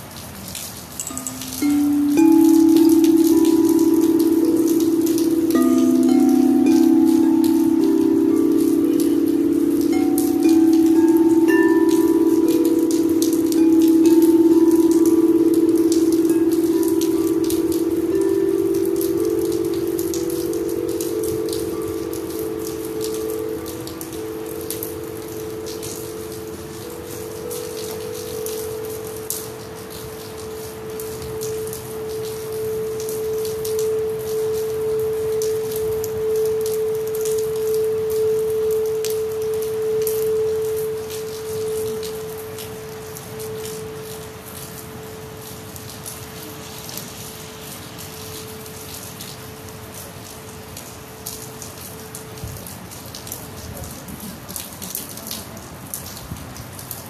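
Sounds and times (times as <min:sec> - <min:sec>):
rain pattering: 0:00.0 - 0:57.0
crystal singing bowls ringing: 0:01.0 - 0:52.6.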